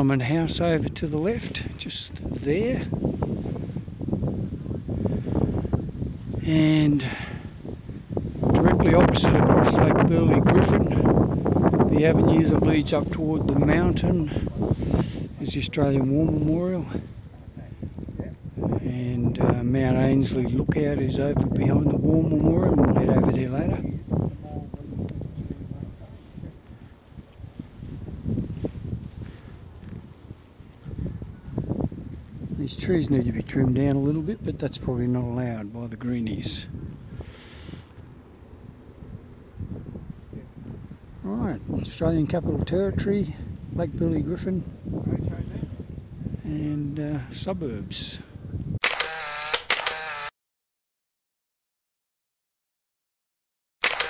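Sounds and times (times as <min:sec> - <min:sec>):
wind buffeting microphone: 0:00.0 - 0:48.9.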